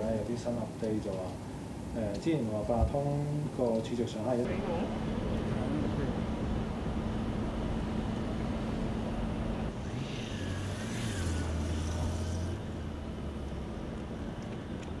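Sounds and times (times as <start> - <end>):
street traffic hum: 0.0 - 15.0
motor vehicle passing: 4.5 - 15.0.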